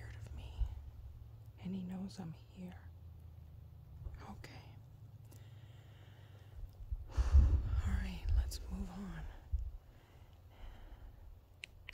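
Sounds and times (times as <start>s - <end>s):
person whispering: 0.0s - 0.8s, 4.1s - 4.8s, 7.6s - 9.6s
low background rumble: 0.0s - 11.9s.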